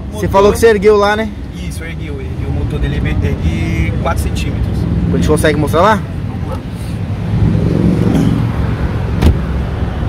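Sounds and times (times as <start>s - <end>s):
thump: 9.2s - 9.5s.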